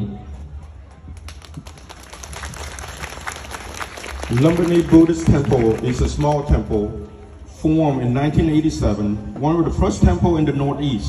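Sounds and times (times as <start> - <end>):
audience applauding: 1.2 - 6.7.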